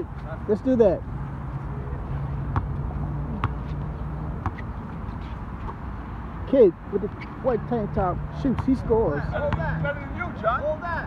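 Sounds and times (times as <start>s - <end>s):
basketball bouncing on asphalt: 2.5s - 4.7s.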